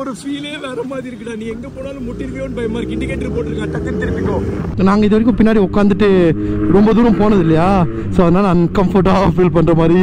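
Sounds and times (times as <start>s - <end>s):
man talking: 0.0s - 10.0s
motorcycle engine hum: 0.0s - 10.0s.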